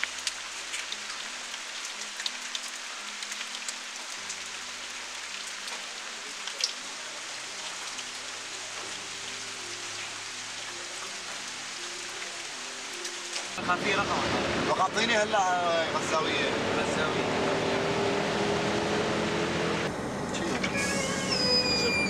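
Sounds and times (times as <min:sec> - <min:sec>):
water drips: 0:00.0 - 0:13.6
steady rain hiss: 0:00.0 - 0:22.0.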